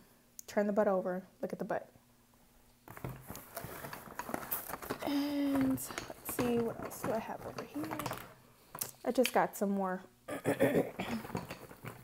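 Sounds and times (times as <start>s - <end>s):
objects knocking and rustling: 2.8s - 9.0s, 10.8s - 12.0s.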